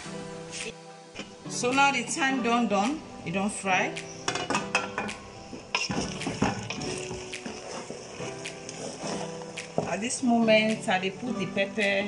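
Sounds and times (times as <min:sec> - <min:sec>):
frying sizzle: 0:00.0 - 0:12.0
spatula scraping metal pot: 0:04.1 - 0:10.1.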